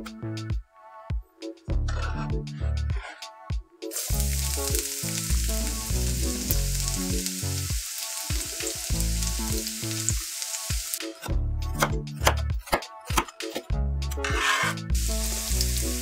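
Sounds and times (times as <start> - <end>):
background music: 0.0 - 16.0
hot oil sizzling in a wok: 3.9 - 11.3, 14.9 - 16.0.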